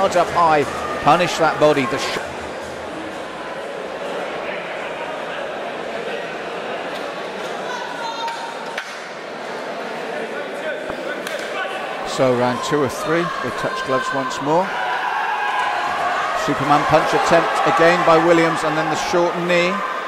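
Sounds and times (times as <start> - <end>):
crowd chatter in large hall: 0.0 - 20.0.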